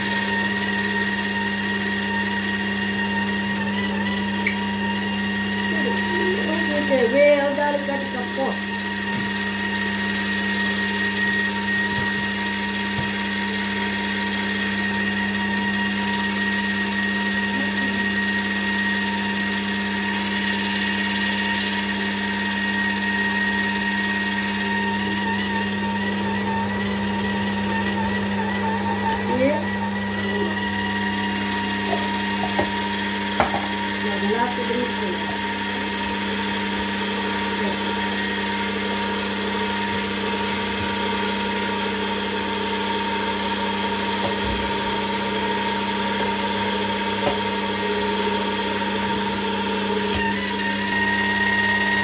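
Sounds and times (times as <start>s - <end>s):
juicer motor humming: 0.0s - 52.0s.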